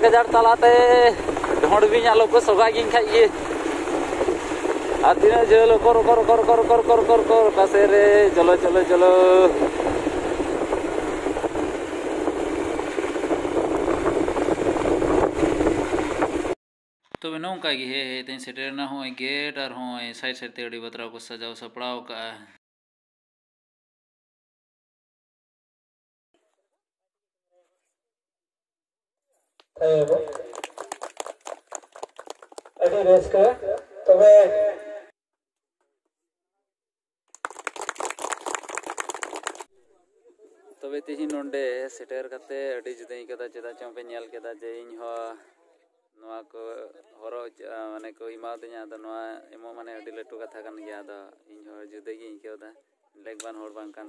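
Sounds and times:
road noise: 0.0 - 16.6
wind rushing: 0.0 - 16.6
people clapping: 29.7 - 34.1, 37.3 - 39.7.

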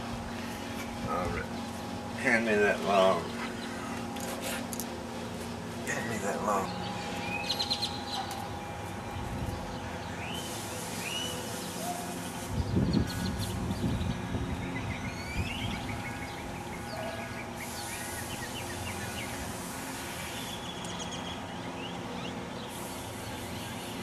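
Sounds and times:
low outdoor hum: 0.0 - 24.0
birds chirping: 0.1 - 24.0.

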